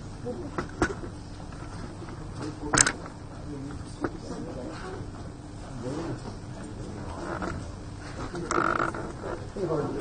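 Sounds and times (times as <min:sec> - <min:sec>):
people talking in a hall: 0:00.0 - 0:10.0.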